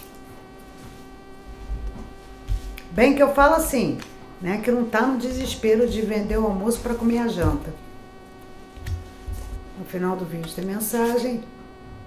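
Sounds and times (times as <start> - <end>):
steady buzzing hum: 0.0 - 12.0
low thuds: 5.2 - 8.0.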